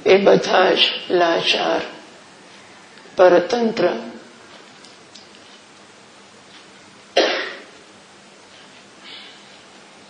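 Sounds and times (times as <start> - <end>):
woman coughing: 7.2 - 7.8.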